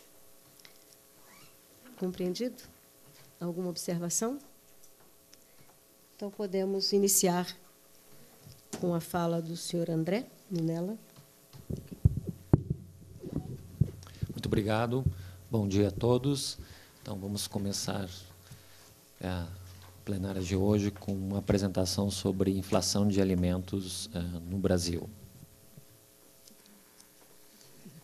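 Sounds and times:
faint steady hum: 0:00.0 - 0:28.0
microphone handling thumps: 0:11.6 - 0:16.8.

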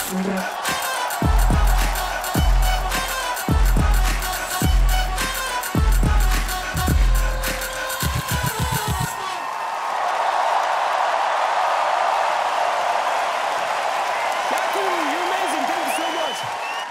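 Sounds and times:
pop song with heavy kick drums: 0:00.0 - 0:09.1
crowd cheering and applauding: 0:00.0 - 0:16.9.

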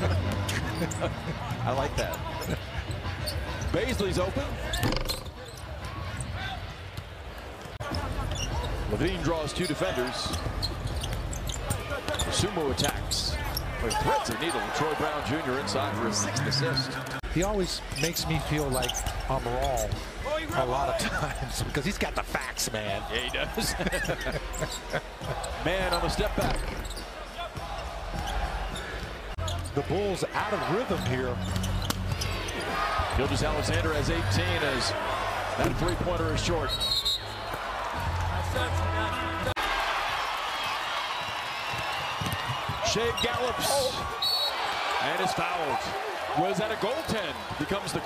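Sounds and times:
arena crowd noise: 0:00.0 - 0:48.0
basketball court sounds: 0:00.0 - 0:48.0.

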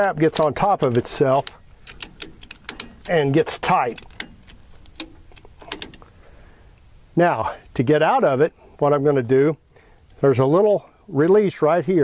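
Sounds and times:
ratchet strap clicking: 0:00.0 - 0:06.1.

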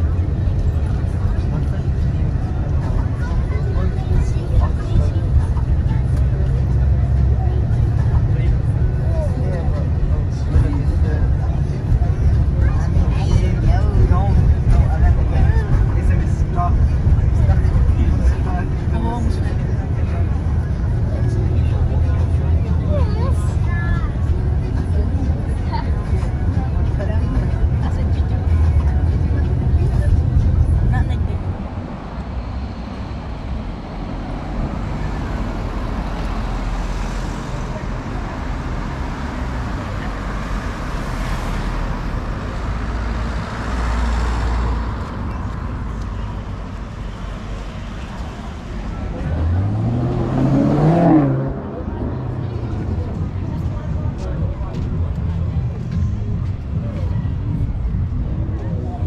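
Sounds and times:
cars driving past: 0:00.0 - 0:59.0
vehicle engine revving: 0:28.3 - 0:59.0.

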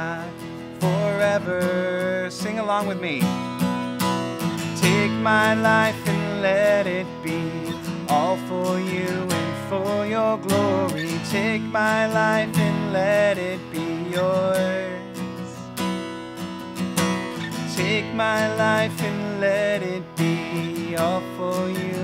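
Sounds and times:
man singing: 0:00.0 - 0:03.5, 0:04.5 - 0:15.8, 0:17.4 - 0:22.0
strummed acoustic guitar: 0:00.0 - 0:22.0.

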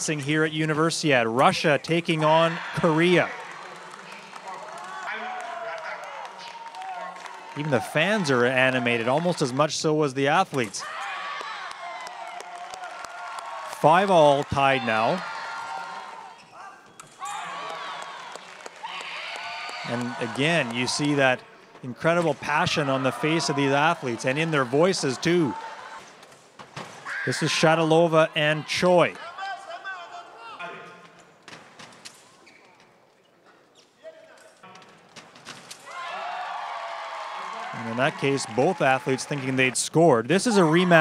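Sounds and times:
crowd murmur and voices: 0:19.8 - 0:31.4.

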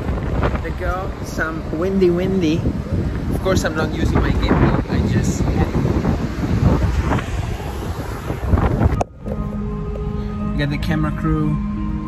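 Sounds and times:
wind buffeting microphone: 0:00.0 - 0:12.0
soft background music: 0:09.0 - 0:12.0.

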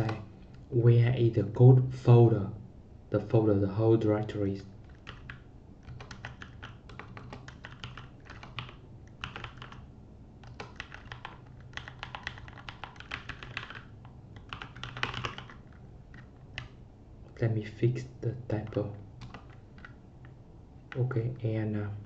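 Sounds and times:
computer keyboard typing: 0:04.8 - 0:16.8, 0:18.6 - 0:21.0.

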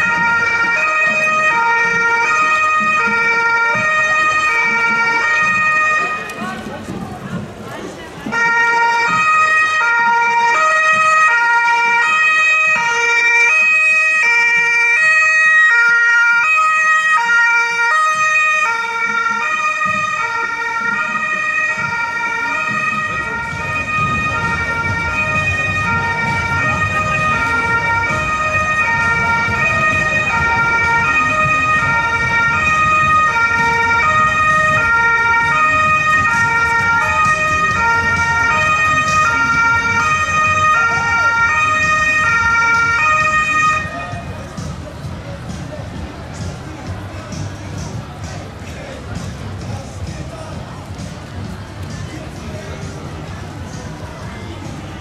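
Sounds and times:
two-tone emergency siren: 0:00.0 - 0:06.4, 0:08.3 - 0:44.7
low rumble of street noise: 0:00.0 - 0:55.0.

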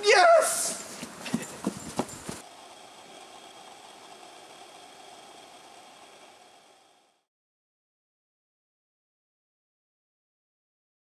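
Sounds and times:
running footsteps: 0:00.4 - 0:02.5.

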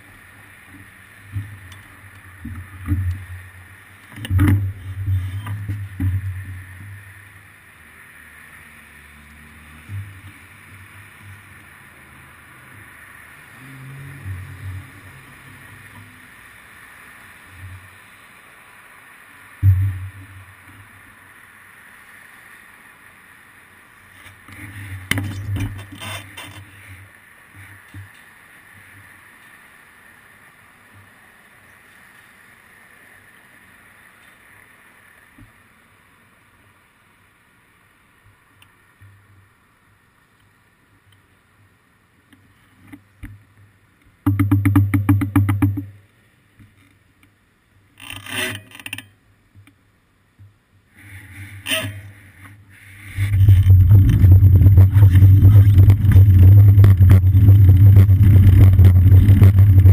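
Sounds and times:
faint traffic hiss: 0:00.0 - 0:59.9
muffled thumps and knocks: 0:44.2 - 0:45.9, 0:53.2 - 0:59.9.

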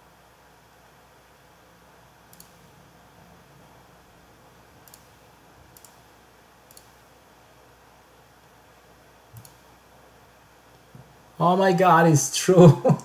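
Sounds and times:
low room hiss: 0:00.0 - 0:13.0
faint computer clicks: 0:02.3 - 0:02.7, 0:04.8 - 0:06.1, 0:06.7 - 0:07.0, 0:09.3 - 0:09.6.

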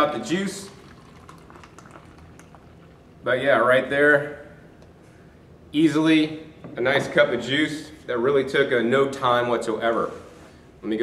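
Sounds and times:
juice pouring into plastic cup: 0:00.0 - 0:03.3.

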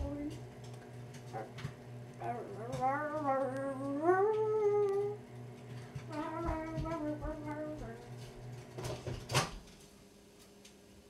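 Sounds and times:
girl humming: 0:00.0 - 0:00.4, 0:02.2 - 0:05.2, 0:06.0 - 0:08.2.

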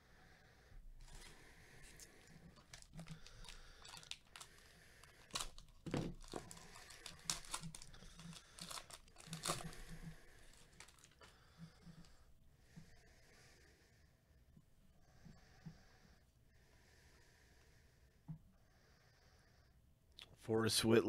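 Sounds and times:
foil wrapper tearing and crinkling: 0:02.6 - 0:11.3.

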